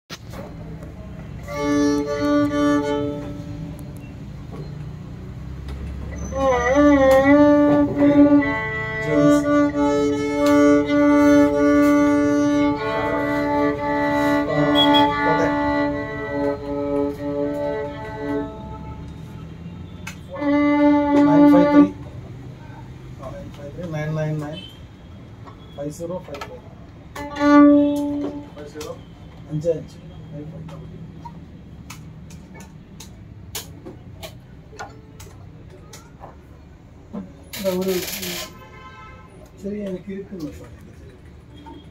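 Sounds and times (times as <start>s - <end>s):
solo violin with vibrato: 1.4s - 4.1s, 6.1s - 19.4s, 20.3s - 22.2s, 27.1s - 28.8s.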